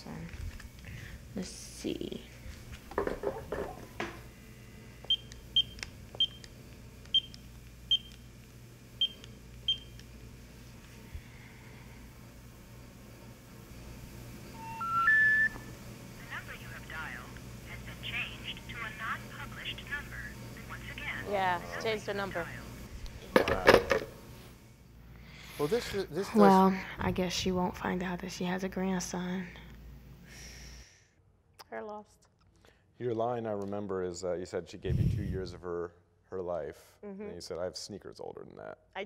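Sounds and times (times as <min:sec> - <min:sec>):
keypad dialing beeps: 0:09.0 - 0:09.9
recorded voice over phone line: 0:16.2 - 0:22.7.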